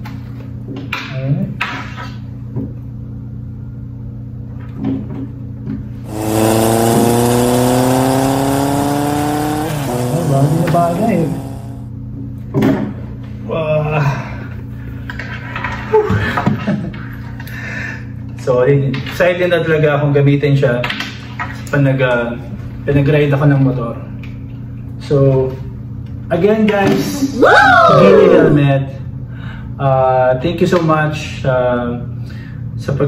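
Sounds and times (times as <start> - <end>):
motorcycle engine revving: 6.0 - 11.9
steady low hum: 6.1 - 11.9.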